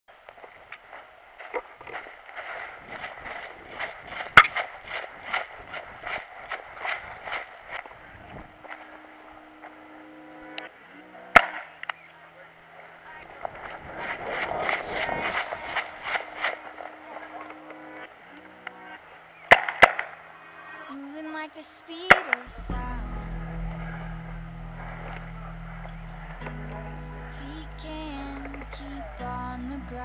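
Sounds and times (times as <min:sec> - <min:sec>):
low held music notes: 0:08.0 - 0:21.6, 0:22.4 - 0:30.0.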